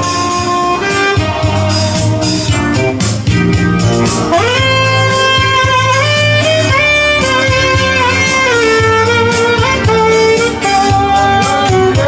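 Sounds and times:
alto saxophone melody: 0.0 - 12.0
electronic keyboard accompaniment: 0.0 - 12.0.

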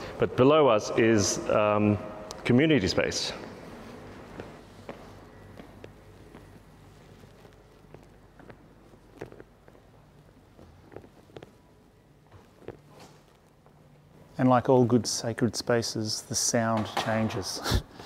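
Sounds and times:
low steady hum: 0.0 - 18.0
footsteps on timber floor: 3.5 - 13.8.

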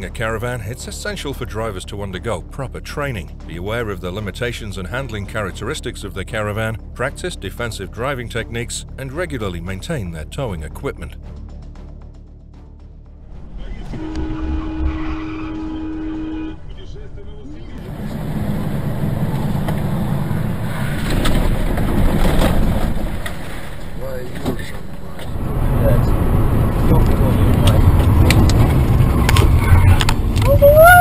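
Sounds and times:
car engine and road noise: 0.0 - 31.0
steady pitched tone: 13.2 - 22.1.

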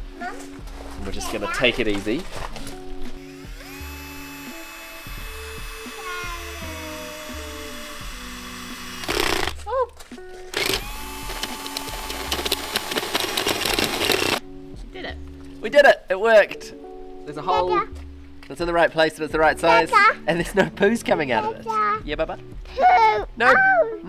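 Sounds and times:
background music: 0.0 - 24.0
drill with hole saw cutting pipe: 3.2 - 9.6, 10.5 - 14.4.

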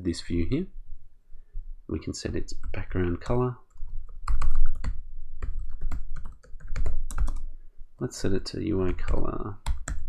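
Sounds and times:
computer keyboard typing: 2.6 - 7.5, 8.8 - 10.0.

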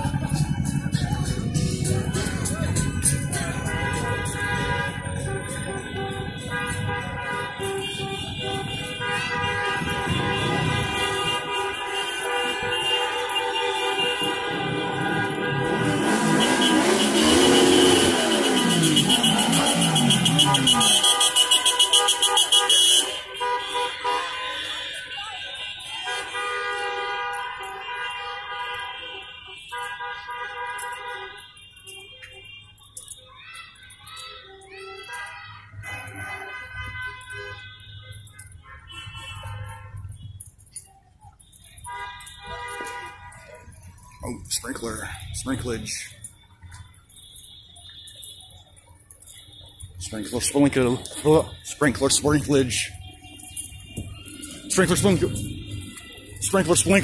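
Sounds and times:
car horns honking: 0.0 - 57.0.

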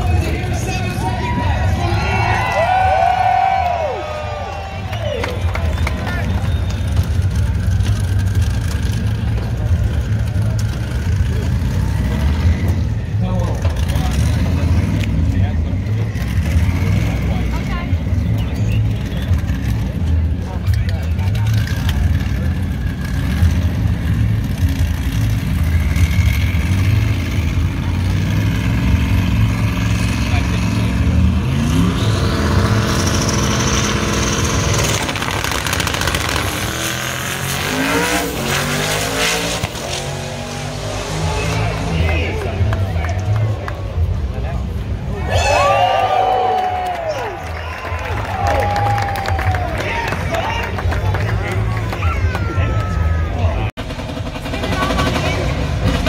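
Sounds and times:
drag-race cars rumbling and accelerating: 0.0 - 56.0.

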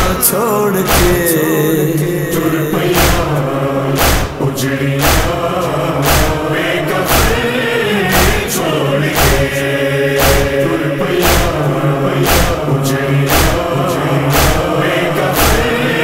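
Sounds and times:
chorus singing a lament: 0.0 - 16.0
strong beat: 0.0 - 16.0.

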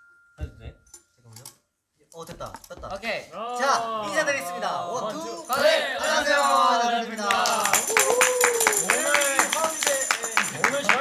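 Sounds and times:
voices calling out: 3.3 - 11.0
people clapping quickly: 7.2 - 11.0.

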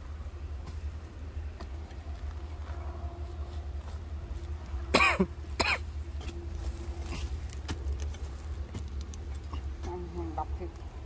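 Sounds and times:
steady low rumble: 0.0 - 11.0
person coughing: 4.9 - 5.9.

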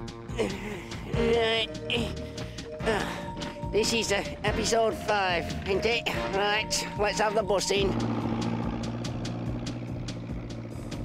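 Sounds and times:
bus engine droning with clatter: 4.8 - 11.0.

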